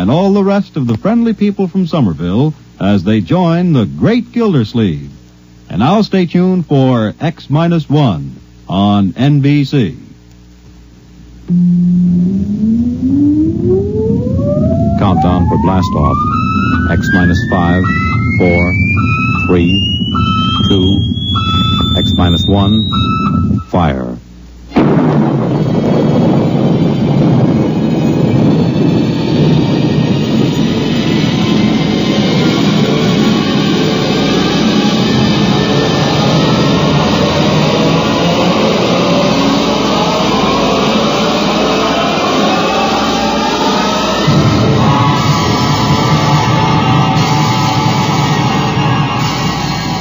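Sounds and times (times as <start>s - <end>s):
rocket engine roaring: 11.5s - 23.6s, 24.7s - 50.0s
low rumble: 11.5s - 23.7s, 24.7s - 39.9s
rising electronic tone: 11.5s - 23.8s, 29.9s - 50.0s.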